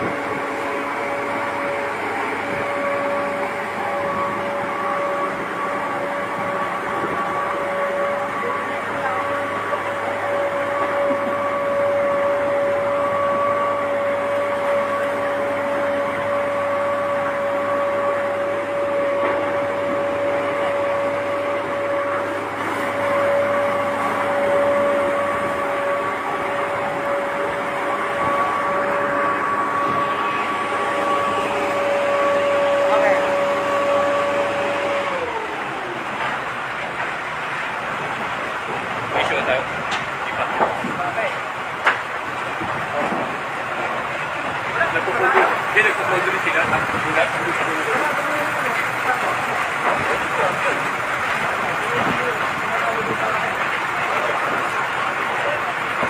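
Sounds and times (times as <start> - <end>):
fire truck machinery whine: 0.0 - 56.0.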